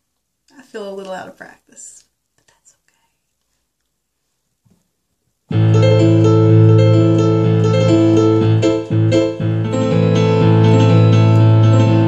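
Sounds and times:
sustained piano chord: 5.5s - 12.0s.

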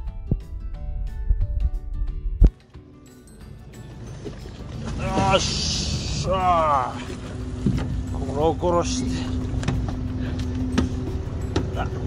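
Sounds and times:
boat engine rumbling: 3.2s - 12.0s
water washing around hull: 3.6s - 12.0s.

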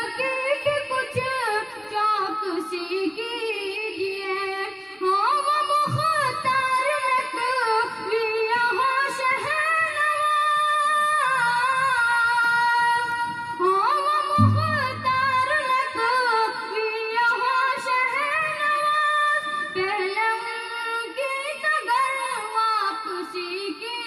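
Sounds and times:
high voice singing devotional song: 0.0s - 24.0s
low rumble: 14.4s - 15.7s.

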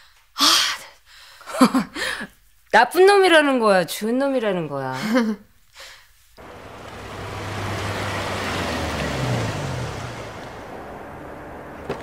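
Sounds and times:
car engine hum and tyre noise: 6.4s - 12.0s.

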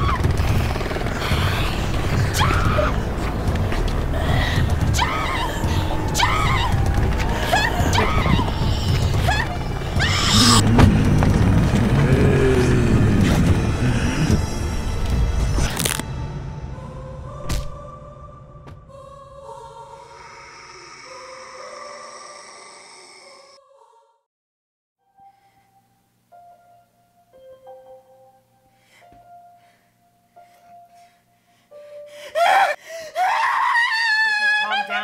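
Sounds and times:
steady low rumble: 0.0s - 20.1s
film score sustained chords: 0.0s - 23.5s
woman's panicked cries: 4.2s - 10.6s, 32.2s - 35.0s.

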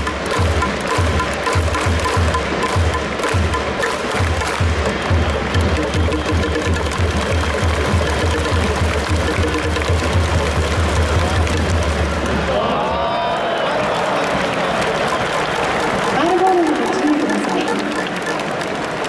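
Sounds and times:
fast drumbeat: 0.0s - 12.6s, 14.8s - 19.0s
music: 0.0s - 12.7s, 13.9s - 19.0s
crowd cheering: 0.0s - 19.0s.

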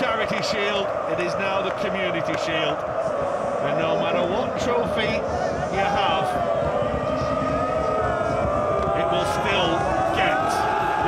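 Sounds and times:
group of voices chanting ooh: 0.0s - 11.0s.

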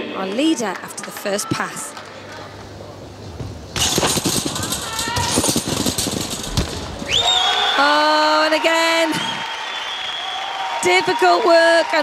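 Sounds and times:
crowd cheering and applause: 6.8s - 12.0s
high whistle: 7.0s - 8.0s.

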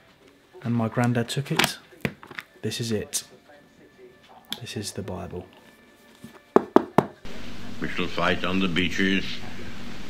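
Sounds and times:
knocks on a hard book cover: 6.5s - 7.2s
hiss of old speech recording: 7.2s - 10.0s.

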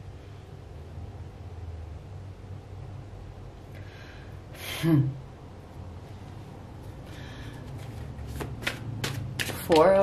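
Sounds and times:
cards being handled: 7.6s - 10.0s.

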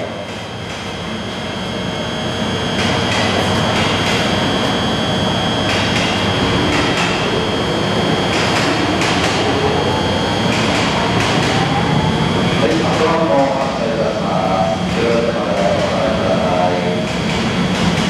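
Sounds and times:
electric locomotive humming: 0.0s - 18.0s.

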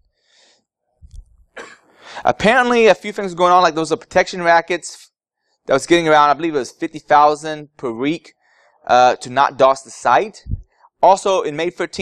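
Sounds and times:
man breathing: 0.1s - 0.7s, 1.9s - 2.3s, 8.4s - 8.8s
soft cough: 1.5s - 2.0s.

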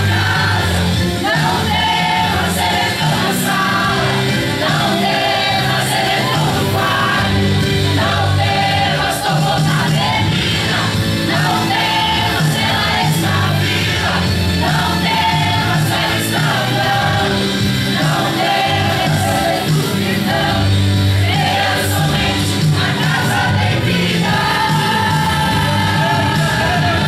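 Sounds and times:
choir singing a hymn: 0.0s - 27.0s.

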